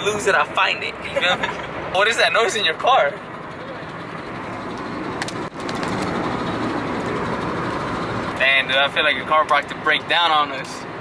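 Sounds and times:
road and tyre noise: 0.0s - 11.0s.

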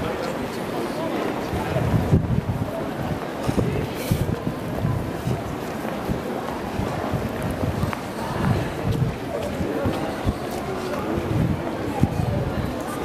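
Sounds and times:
wind buffeting microphone: 1.3s - 13.0s.

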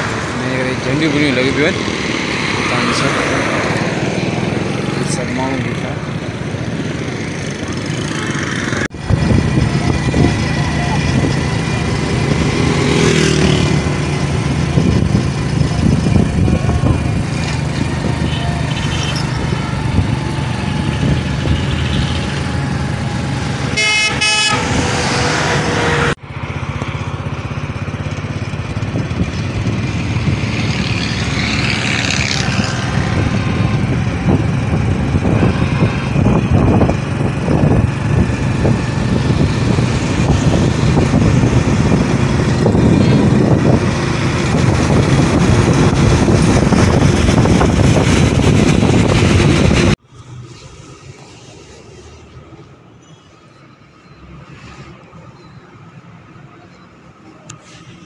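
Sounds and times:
vehicle engine and road noise: 0.0s - 58.0s
vehicle horn: 23.6s - 26.1s.

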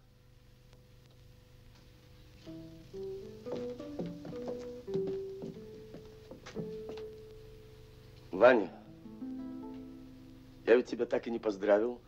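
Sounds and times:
plucked guitar melody: 2.5s - 7.3s, 8.8s - 10.6s.

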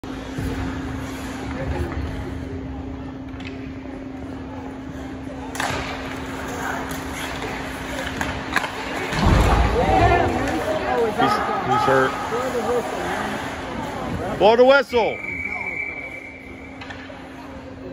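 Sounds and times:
voices: 1.6s - 17.9s
hockey sticks and puck clacking: 5.5s - 9.3s, 16.6s - 17.3s.

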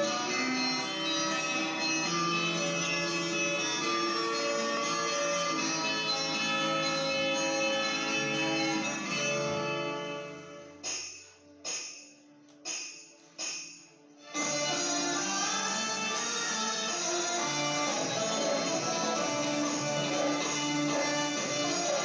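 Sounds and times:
electronic keyboard chords: 0.0s - 11.4s, 14.2s - 22.0s.

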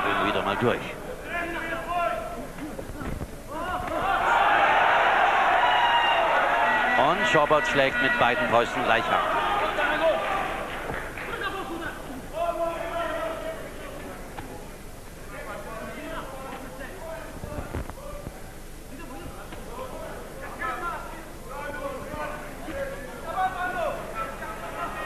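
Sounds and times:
commentators talking: 6.9s - 10.1s.

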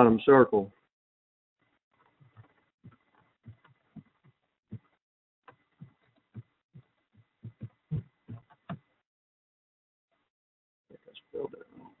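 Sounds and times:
dull low thumps on wooden floor: 2.2s - 8.9s.

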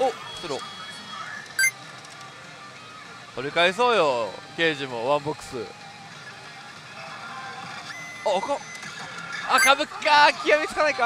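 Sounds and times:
pachinko machine game music: 0.0s - 1.8s, 7.9s - 10.6s.

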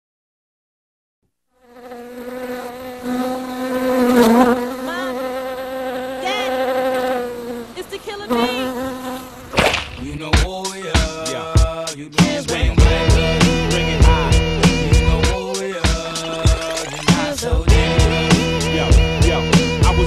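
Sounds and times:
bee buzzing: 1.6s - 10.2s, 12.2s - 20.0s
hip-hop beat: 10.0s - 20.0s.

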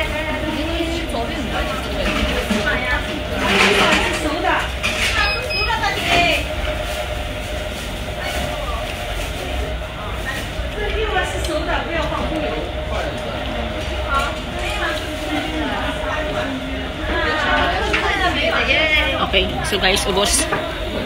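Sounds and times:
diners chatting: 0.0s - 21.0s.

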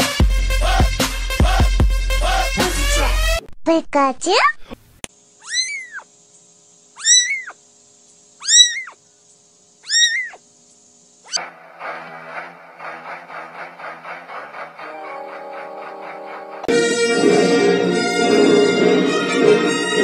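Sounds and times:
music with steady beat: 0.0s - 3.4s
kitten meowing: 5.4s - 6.1s, 7.0s - 7.6s, 8.4s - 9.0s, 9.8s - 10.4s.

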